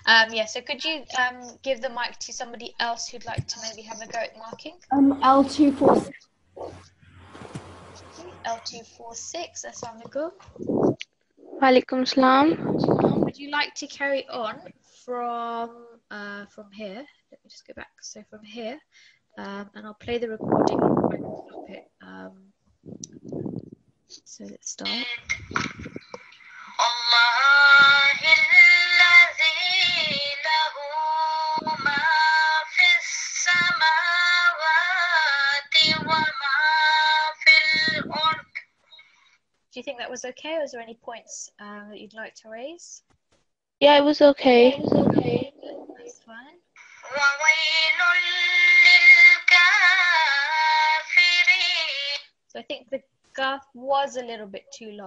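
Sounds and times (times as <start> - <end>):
person chanting recitation: 3.2 - 6.8, 7.6 - 13.4, 24.8 - 38.6, 44.7 - 46.1, 47.0 - 52.2.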